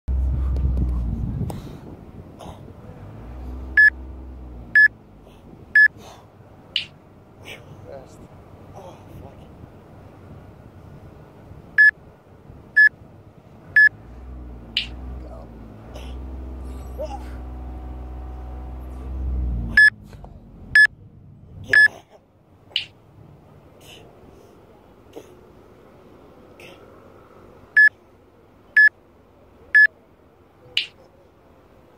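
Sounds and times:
low rumble: 0.1 - 5.8, 13.7 - 21.8
faint background noise: 0.1 - 31.9
short electronic beeps: 3.8 - 4.0, 14.8 - 15.0, 19.8 - 20.0, 21.7 - 21.9.

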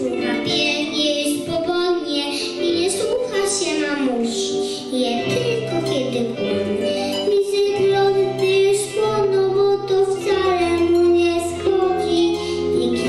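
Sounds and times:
girl singing into a microphone: 0.0 - 13.0
instrumental accompaniment: 0.0 - 13.0.

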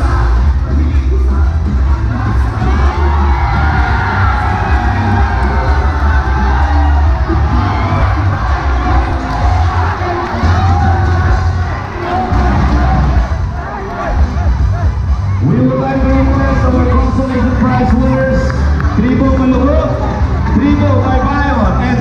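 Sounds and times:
bass-heavy music: 0.0 - 22.0
crowd cheering and shouting: 0.0 - 22.0.

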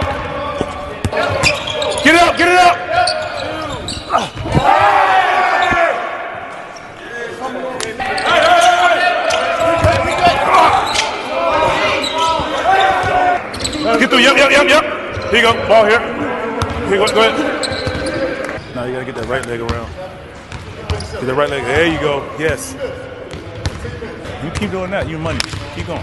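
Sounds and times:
players shouting and chatting: 0.0 - 26.0
basketball bouncing on court: 9.8 - 10.3, 16.6 - 16.9, 23.3 - 23.8, 24.5 - 26.0.

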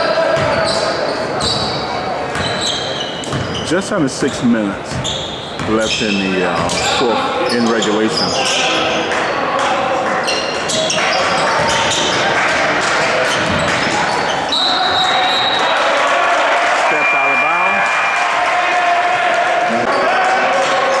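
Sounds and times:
players shouting: 0.0 - 3.0, 5.9 - 21.0
spectators' voices: 0.0 - 21.0.

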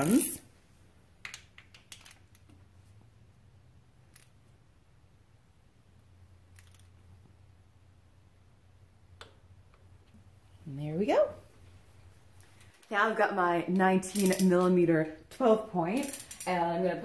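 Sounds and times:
low steady hum: 2.1 - 17.0
torque wrench clicks: 14.1 - 14.5, 16.0 - 16.6.

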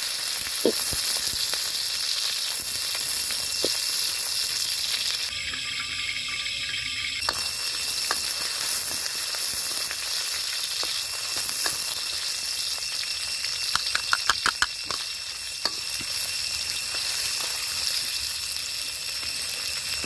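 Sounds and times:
food sizzling in hot oil: 0.0 - 20.0.

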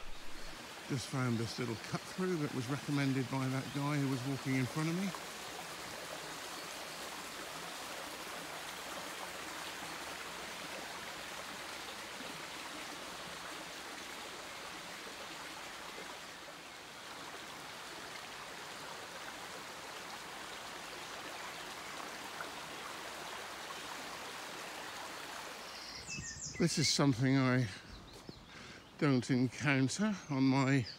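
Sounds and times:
stream water rushing: 0.0 - 27.9.

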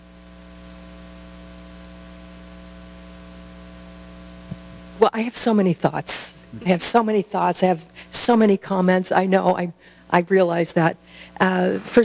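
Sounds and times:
electrical mains hum: 0.0 - 12.0
microphone hiss: 0.0 - 12.0.

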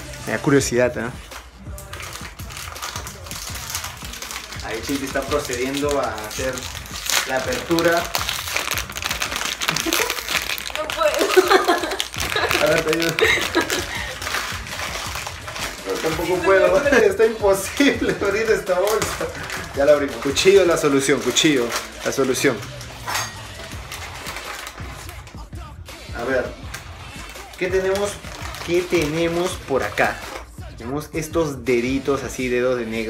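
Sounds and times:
music with deep beat: 0.0 - 33.0
plastic snack bag crinkling: 1.3 - 25.5, 26.2 - 30.5.

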